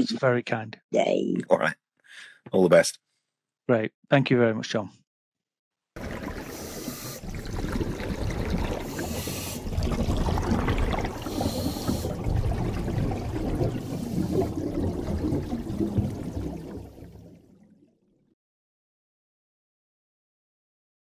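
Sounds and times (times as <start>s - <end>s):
bubbling trickling water: 6.0s - 18.2s.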